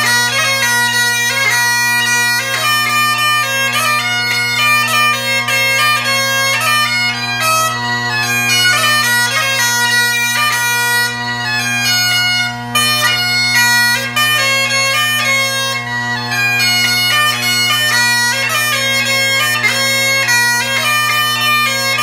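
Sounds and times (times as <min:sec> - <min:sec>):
bagpipes playing a tune: 0:00.0 - 0:22.0.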